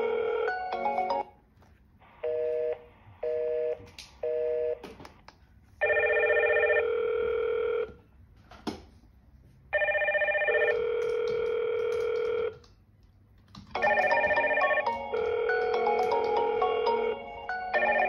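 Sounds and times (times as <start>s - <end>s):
intercom ringing tones: 13.8s - 18.0s.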